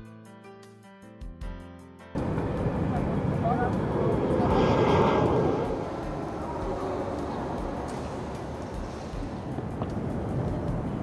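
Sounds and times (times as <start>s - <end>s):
soft instrumental music: 0.0s - 5.1s
jet airliner flying overhead: 2.2s - 11.0s.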